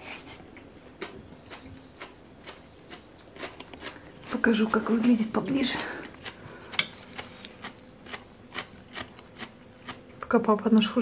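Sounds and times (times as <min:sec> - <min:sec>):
chewing crunchy cabbage: 0:00.8 - 0:04.9, 0:06.0 - 0:10.3.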